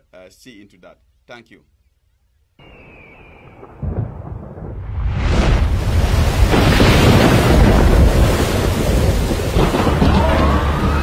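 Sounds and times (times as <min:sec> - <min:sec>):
heavy rain: 0:02.6 - 0:11.0
thunder rumble: 0:02.6 - 0:11.0.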